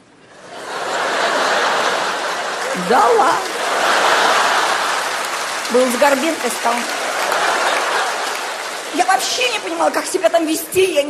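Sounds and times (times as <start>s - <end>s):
audience applauding: 0.6s - 11.0s.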